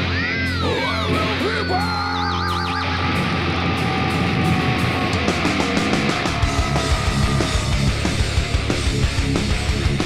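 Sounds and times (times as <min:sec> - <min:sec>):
heavy metal band playing: 0:00.0 - 0:10.0.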